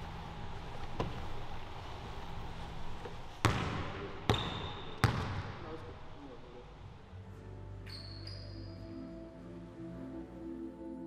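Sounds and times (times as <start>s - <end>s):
basketball bouncing on hardwood floor: 3.4s - 5.6s.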